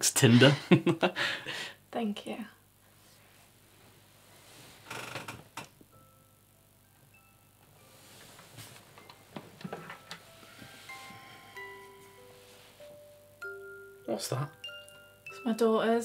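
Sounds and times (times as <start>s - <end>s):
bedding rustling: 2.9s - 5.2s, 7.8s - 13.5s
musical toy tinkling tune: 5.9s - 8.1s, 10.0s - 16.0s.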